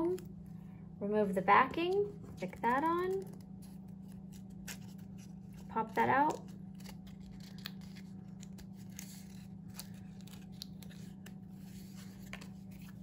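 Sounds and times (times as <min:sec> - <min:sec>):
steady low hum: 0:00.0 - 0:13.0
foam and cardstock crinkling: 0:01.8 - 0:13.0.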